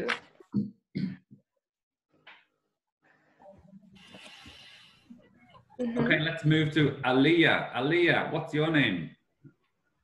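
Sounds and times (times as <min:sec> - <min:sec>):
man speaking: 0:06.0 - 0:09.2.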